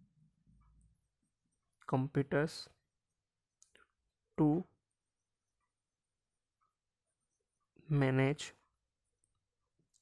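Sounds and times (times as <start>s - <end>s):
person speaking: 1.7s - 5.2s, 7.3s - 10.0s.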